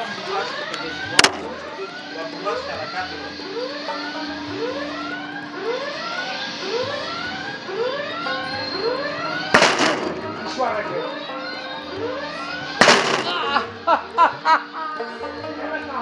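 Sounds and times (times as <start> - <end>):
sharp knock: 9.6 - 10.2, 12.8 - 13.5.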